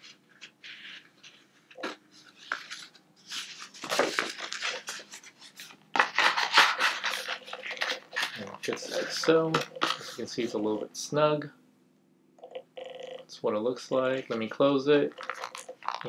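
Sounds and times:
notepad scraping against leather: 0.0s - 10.6s.

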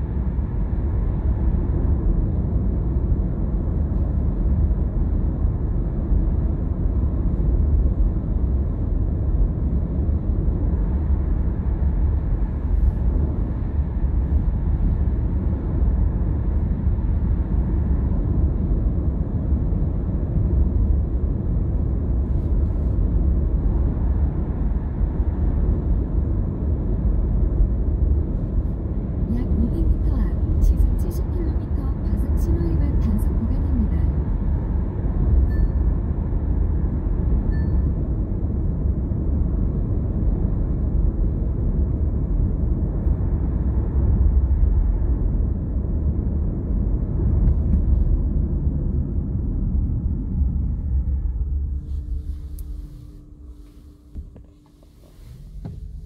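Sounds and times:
engine drone: 0.0s - 56.0s.

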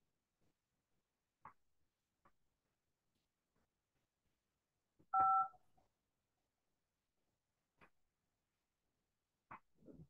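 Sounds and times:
telephone keypad tone: 5.2s - 5.5s.

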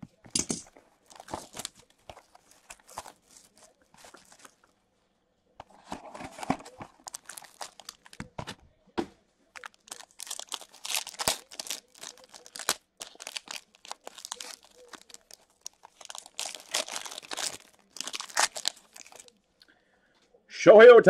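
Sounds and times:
foil wrapper tearing and crinkling: 1.0s - 4.7s, 6.4s - 8.3s, 9.6s - 19.4s.

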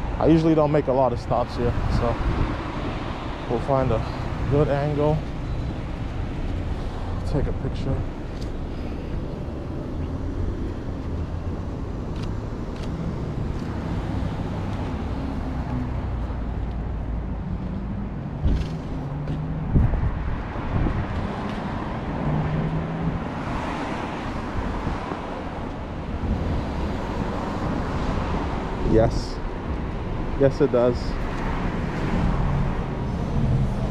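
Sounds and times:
cars driving past: 0.0s - 33.9s.

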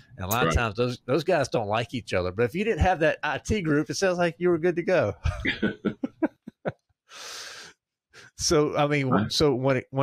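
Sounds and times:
man chuckling: 5.2s - 6.8s.

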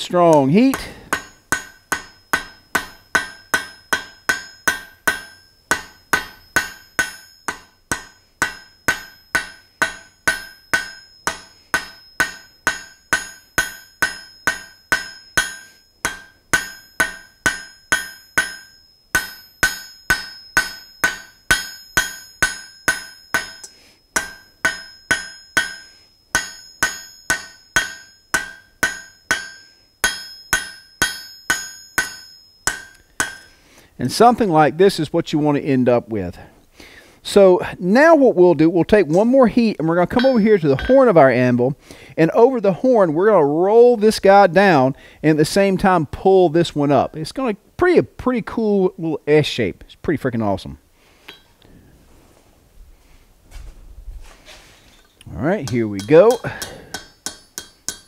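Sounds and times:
anvil ringing: 0.0s - 33.6s, 40.0s - 41.4s, 51.3s - 51.6s, 55.6s - 58.0s
hammer striking steel on anvil: 0.0s - 33.6s, 40.1s - 41.2s, 51.3s - 51.6s, 55.6s - 58.0s.

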